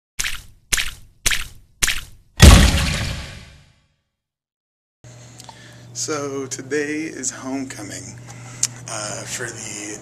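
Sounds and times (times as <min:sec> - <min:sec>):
short sharp whacks: 0:00.2 - 0:03.6
loud hit: 0:02.4 - 0:03.6.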